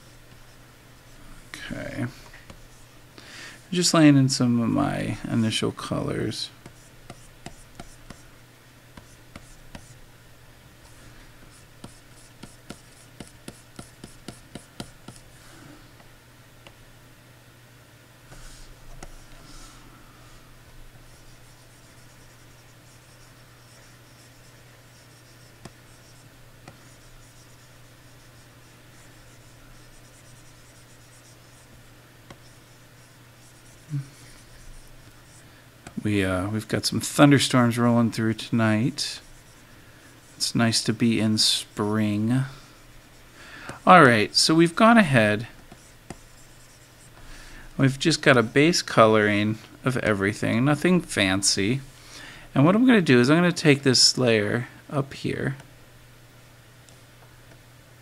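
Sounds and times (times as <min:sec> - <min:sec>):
stylus scratching on tablet: 0:00.0 - 0:02.9, 0:06.6 - 0:08.3, 0:09.0 - 0:10.0, 0:11.5 - 0:15.3, 0:21.0 - 0:35.4, 0:38.5 - 0:47.2
low steady hum: 0:00.0 - 0:58.0.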